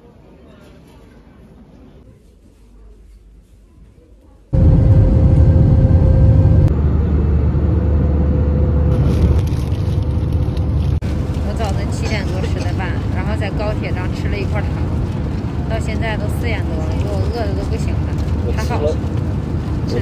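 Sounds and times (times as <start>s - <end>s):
jet engines roaring in cabin: 4.5s - 20.0s
steady hum: 4.5s - 20.0s
woman talking: 11.4s - 15.0s, 15.6s - 19.0s.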